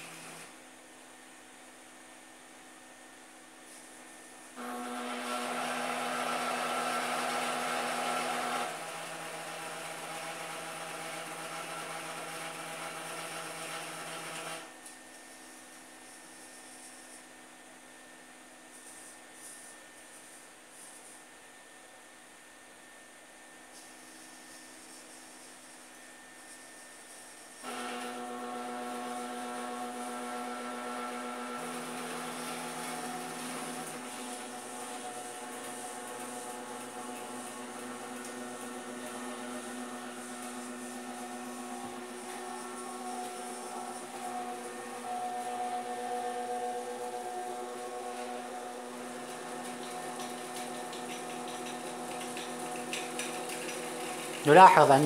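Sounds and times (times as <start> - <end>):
electric motors whining: 0.0 - 0.8, 4.5 - 15.5, 24.2 - 55.0.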